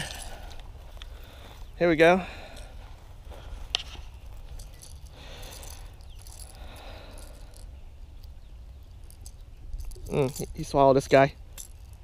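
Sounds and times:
fishing lure rattling: 4.2 - 10.8, 11.4 - 12.0.

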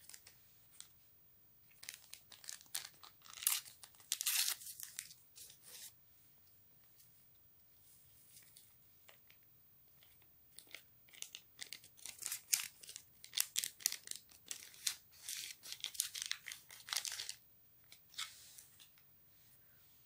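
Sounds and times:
paper sachet tearing and crinkling: 1.8 - 5.9, 10.6 - 17.4.

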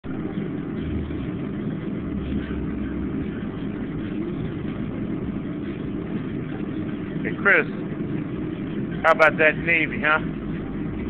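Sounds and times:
steady low machine hum: 0.0 - 11.0.

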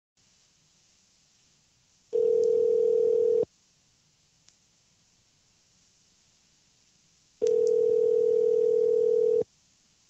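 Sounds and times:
faint line hiss: 0.2 - 10.0
telephone ringback tone: 2.2 - 3.5, 7.4 - 9.4.

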